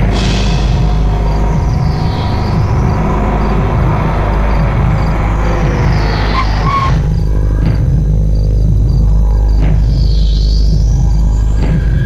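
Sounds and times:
car engine driving slowly: 0:00.0 - 0:11.7
low rumbling film score drone: 0:00.0 - 0:12.0.

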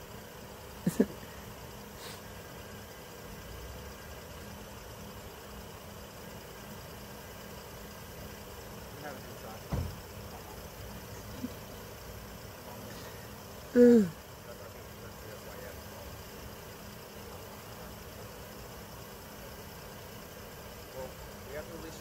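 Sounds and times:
vehicle engines idling: 0:00.0 - 0:22.0.

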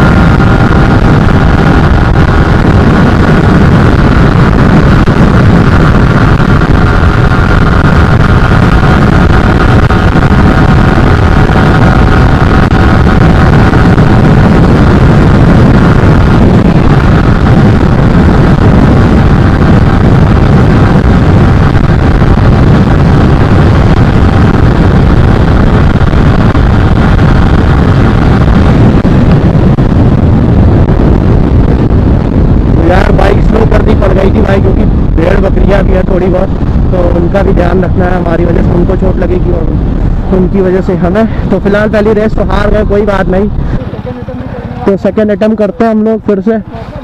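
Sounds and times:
motorcycle engine steady note: 0:00.0 - 0:47.0
wind rushing over microphone: 0:00.0 - 0:47.0
man talking: 0:32.8 - 0:47.0.

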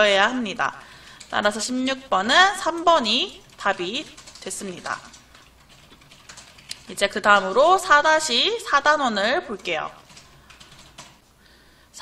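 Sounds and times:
person speaking: 0:00.0 - 0:11.2.

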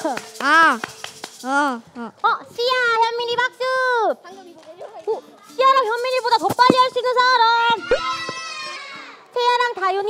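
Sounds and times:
children shouting: 0:07.8 - 0:09.2.

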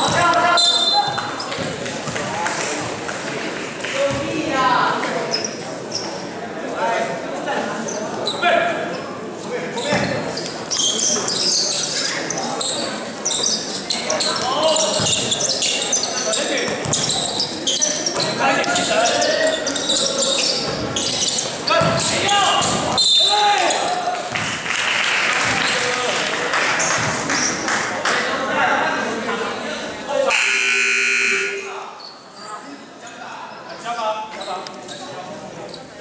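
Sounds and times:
players' voices and shouts: 0:11.0 - 0:24.4, 0:28.2 - 0:33.2
basketball bouncing on wooden floor: 0:21.8 - 0:22.9.

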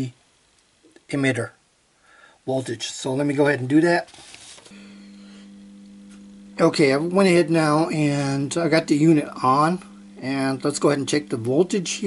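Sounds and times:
transformer mains hum: 0:04.7 - 0:12.0.

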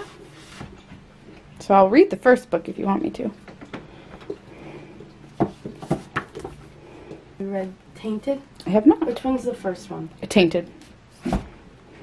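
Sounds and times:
knocks and rubs of book handling: 0:00.0 - 0:00.8, 0:05.4 - 0:06.7, 0:11.2 - 0:11.5.

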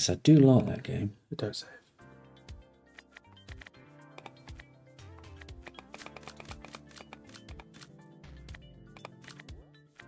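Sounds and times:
slot game background music: 0:02.0 - 0:10.0
rapid button clicks: 0:03.5 - 0:04.6, 0:05.2 - 0:07.8.

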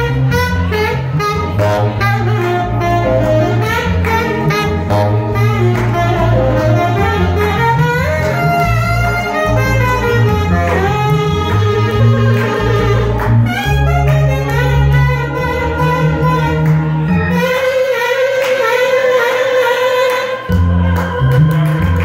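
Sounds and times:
stepping bass line: 0:00.0 - 0:18.0, 0:20.5 - 0:22.0
keyboard accompaniment: 0:00.0 - 0:22.0
saxophone melody: 0:00.0 - 0:22.0.

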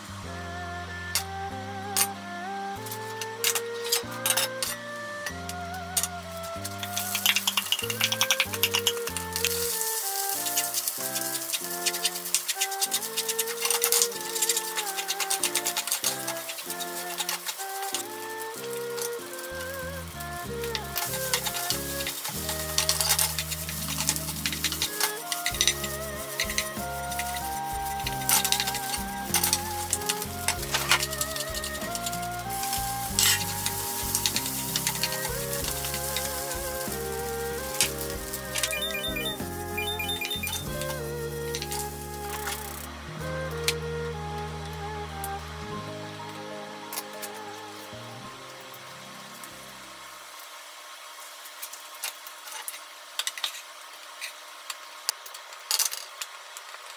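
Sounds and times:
light background music: 0:00.0 - 0:50.2
rice sizzling in a frying pan: 0:05.4 - 0:43.8, 0:45.8 - 0:56.9.

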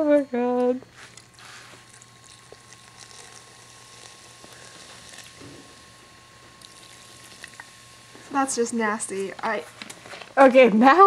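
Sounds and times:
soda pouring and fizzing: 0:01.4 - 0:06.0, 0:06.6 - 0:08.0.

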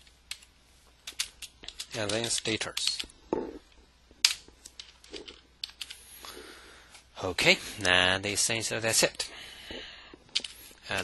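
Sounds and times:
computer keyboard keystrokes: 0:05.6 - 0:06.0.

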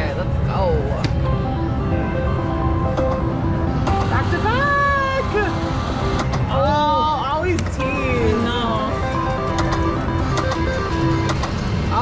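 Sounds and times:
low casino hubbub: 0:00.0 - 0:12.0
beeping electronic slot machine tune: 0:07.9 - 0:11.9
slot machine reels clicking: 0:09.3 - 0:11.7.

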